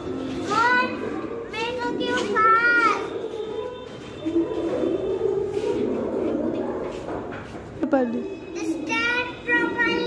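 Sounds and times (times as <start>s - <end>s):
toddlers calling and chattering: 0.0s - 10.0s.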